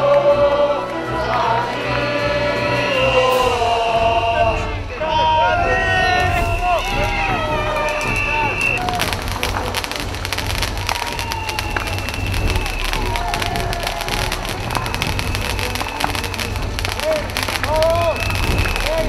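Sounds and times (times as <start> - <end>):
low rumble of flames: 5.7 - 19.0
bonfire crackling and popping: 6.2 - 19.0.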